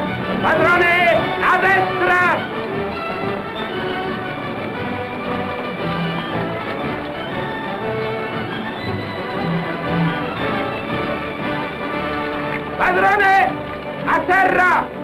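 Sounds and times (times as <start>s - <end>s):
orchestral music with held notes: 0.0s - 15.0s.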